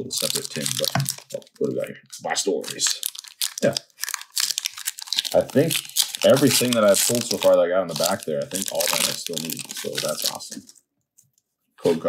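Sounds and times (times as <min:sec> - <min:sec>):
foil wrapper crinkling: 0:00.0 - 0:01.6, 0:02.6 - 0:10.8.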